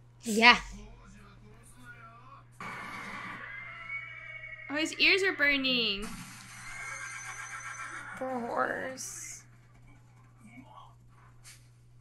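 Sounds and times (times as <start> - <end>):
horse whinnying: 2.9 - 4.8, 6.8 - 8.2.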